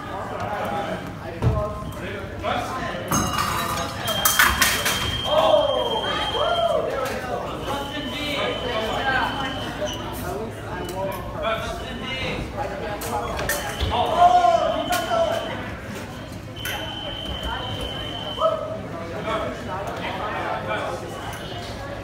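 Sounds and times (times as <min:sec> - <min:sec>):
voices echoing in a hall: 0:00.0 - 0:22.0.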